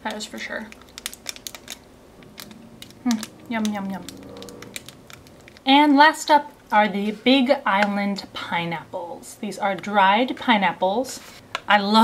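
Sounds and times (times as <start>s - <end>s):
plastic wrapper crackling: 0.0s - 5.7s
person chewing: 0.7s - 5.7s.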